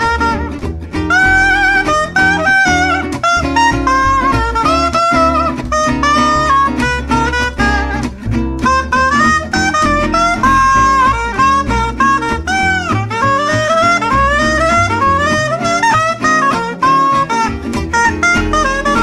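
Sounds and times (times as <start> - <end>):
saxophone solo: 0.0 - 19.0
swing jazz backing band: 0.0 - 19.0.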